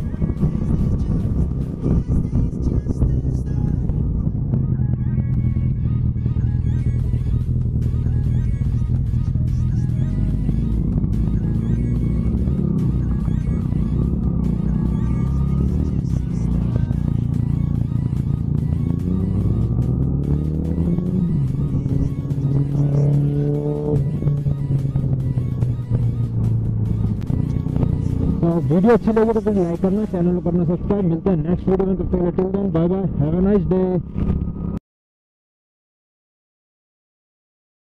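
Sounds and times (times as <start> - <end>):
background music: 0.0 - 33.3
motorcycle engine running: 0.0 - 34.8.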